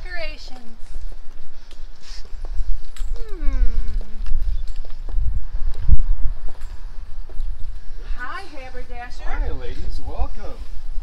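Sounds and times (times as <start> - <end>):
footsteps on concrete: 0.0 - 9.2
wind buffeting microphone: 0.0 - 11.0.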